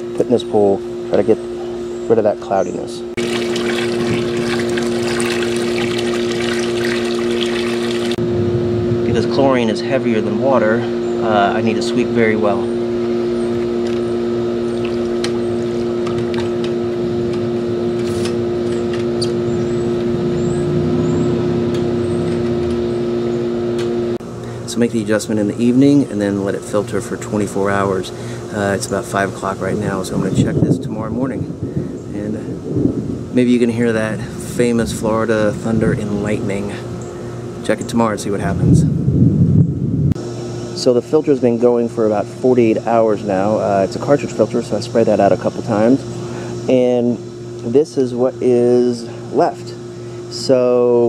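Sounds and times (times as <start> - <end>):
electric machine hum: 0.0 - 51.0.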